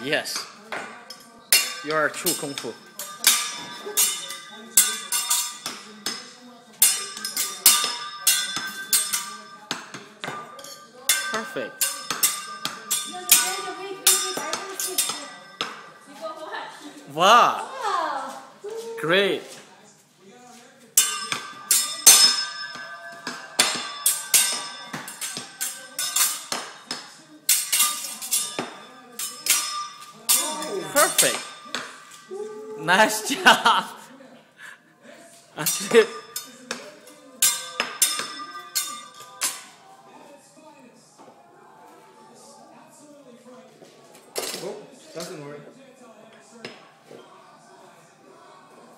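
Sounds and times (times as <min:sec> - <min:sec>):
metal utensils clanking: 0:00.2 - 0:16.1, 0:21.0 - 0:32.3, 0:35.6 - 0:39.7.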